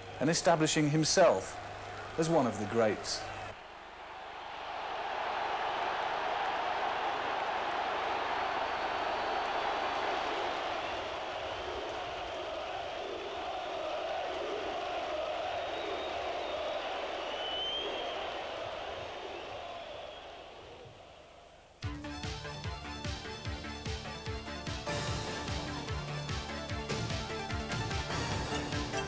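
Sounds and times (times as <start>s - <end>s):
crowd cheering and applauding: 0.8s - 21.1s.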